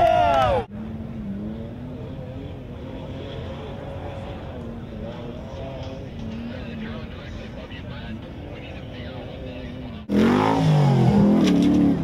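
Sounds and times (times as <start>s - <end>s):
off-road vehicle engine running: 0.7s - 12.0s.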